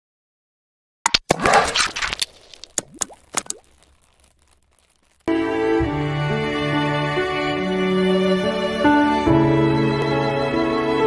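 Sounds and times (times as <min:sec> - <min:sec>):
cartoon pops: 0:01.1 - 0:05.2.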